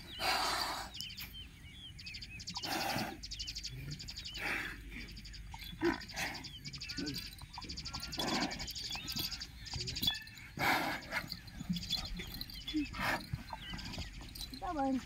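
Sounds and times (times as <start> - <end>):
birds chattering: 0.0 - 15.0.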